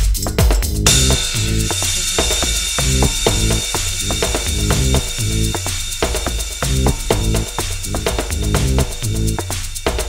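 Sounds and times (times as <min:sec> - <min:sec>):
bass line: 0:00.0 - 0:09.6
clicky rhythmic percussion: 0:00.0 - 0:10.0
kick drum beat: 0:00.0 - 0:10.0
bright hiss of noise: 0:00.9 - 0:09.9.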